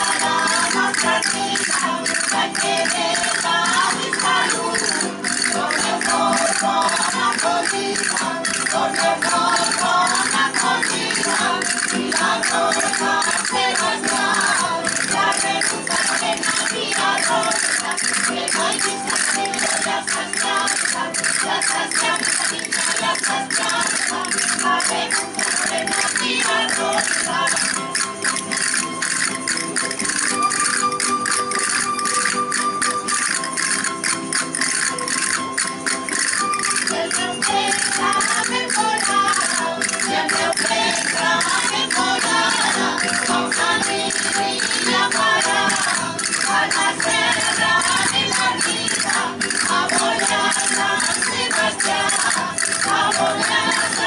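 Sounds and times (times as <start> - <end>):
folk dance music: 0.0 - 54.0
rapid castanet clicking: 0.0 - 54.0.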